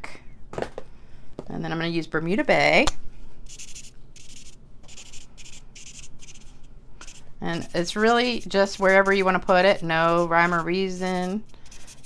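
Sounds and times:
marker scribbling on cardstock: 3.5 - 12.0.

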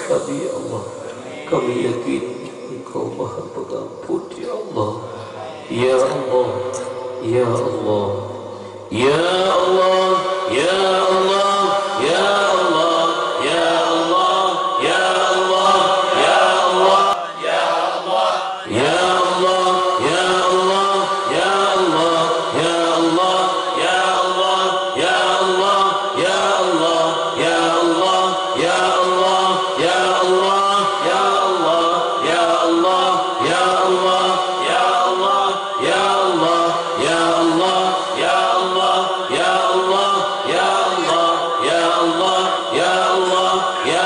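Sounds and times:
men chanting together: 9.0 - 44.0.

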